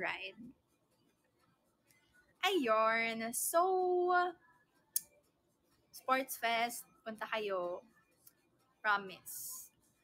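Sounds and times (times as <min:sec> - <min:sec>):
woman speaking: 0:00.0 - 0:00.5, 0:02.4 - 0:04.4, 0:06.0 - 0:07.9, 0:08.8 - 0:09.7.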